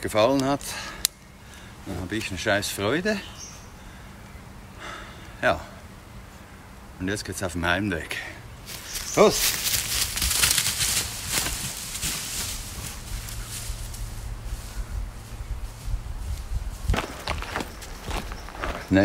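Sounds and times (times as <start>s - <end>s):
footsteps in dry leaves: 8.6s - 19.0s.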